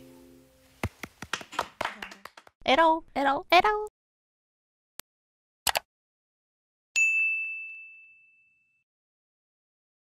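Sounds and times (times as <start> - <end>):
bell-like ding: 7.0 - 8.8.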